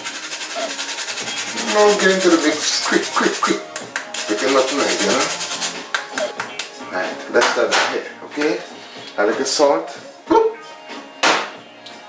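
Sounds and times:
nutmeg grating on hand grater: 0.0 - 6.4.

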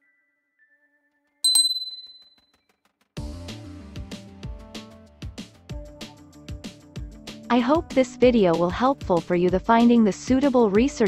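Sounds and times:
high bell ding: 1.4 - 2.4.

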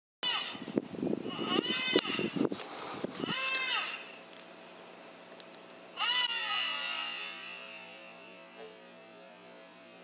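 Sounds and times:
high whining predator call: 0.2 - 0.7, 1.3 - 2.4, 3.2 - 4.2, 5.9 - 9.8.

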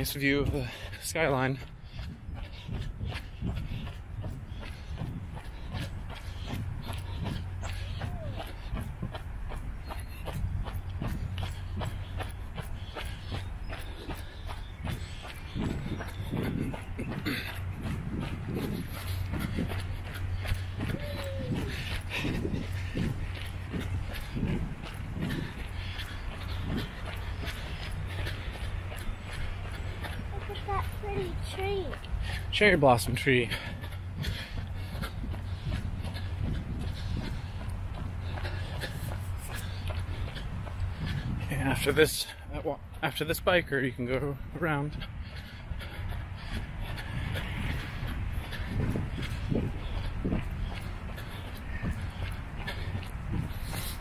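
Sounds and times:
bicycle rolling on paved path: 0.0 - 54.0
wind on microphone: 1.6 - 32.5, 33.5 - 42.0, 44.9 - 54.0.

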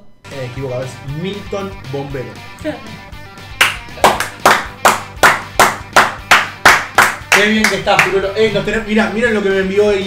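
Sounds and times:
people clapping in rhythm: 3.5 - 8.2.

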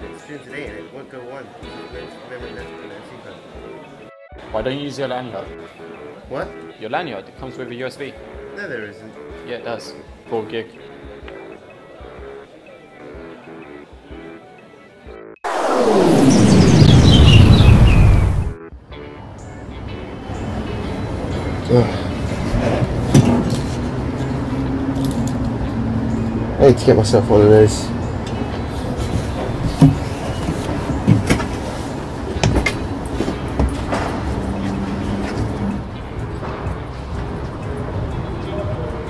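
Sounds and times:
soft background music: 0.0 - 15.4, 18.6 - 39.0
noisy falling-pitch sound effect: 15.4 - 18.6.

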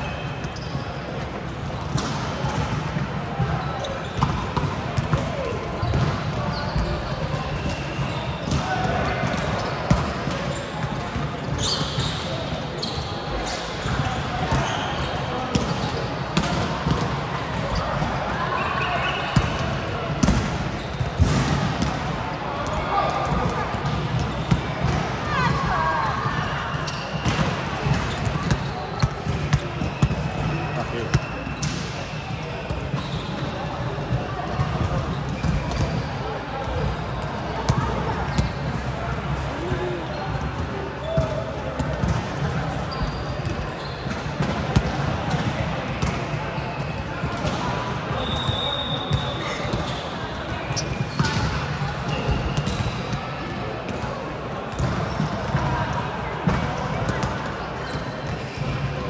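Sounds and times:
players chattering: 0.1 - 59.0.

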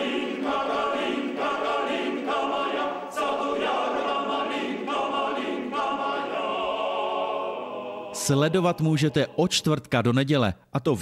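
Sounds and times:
male choir singing a cappella: 0.0 - 9.8.

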